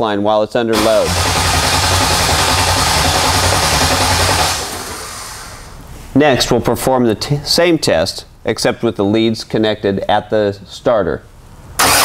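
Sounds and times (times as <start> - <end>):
starter motor cranking engine: 0.8 - 5.8, 11.8 - 12.0.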